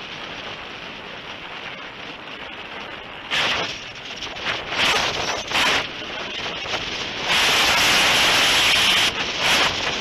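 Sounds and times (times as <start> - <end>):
rush of air over camera: 0.0 - 10.0.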